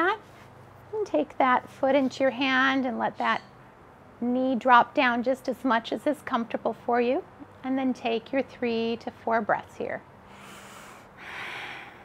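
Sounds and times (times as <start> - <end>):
woman breathing: 10.2 - 12.0.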